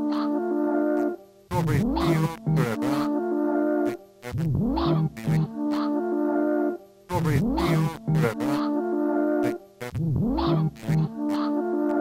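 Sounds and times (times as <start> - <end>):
synthesizer tones: 0.0 - 12.0.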